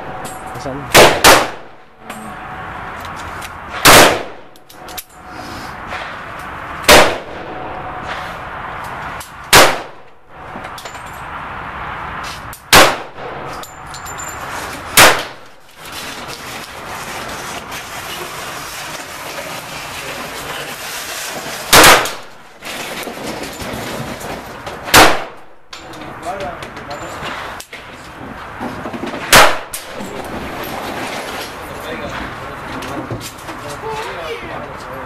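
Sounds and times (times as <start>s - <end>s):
pistol shots: 0.9s - 1.8s, 3.8s - 4.5s, 6.9s - 7.6s, 9.5s - 10.0s, 12.7s - 13.5s, 15.0s - 15.4s, 21.7s - 22.4s, 24.9s - 25.5s, 29.3s - 30.0s.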